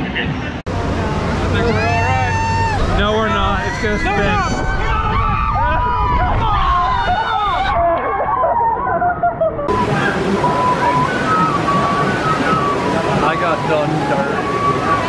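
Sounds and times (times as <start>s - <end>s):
water rushing and sloshing: 0.1s - 15.0s
riders yelling and shouting: 1.6s - 8.6s.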